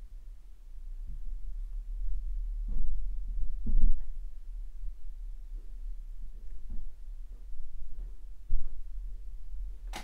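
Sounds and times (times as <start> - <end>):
steady rumble: 0.0 - 10.0.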